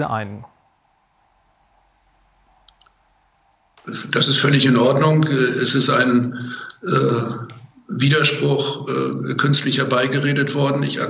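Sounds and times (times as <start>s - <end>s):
man speaking: 0.0s - 0.5s, 3.8s - 11.0s
faint short clicks: 2.6s - 3.0s.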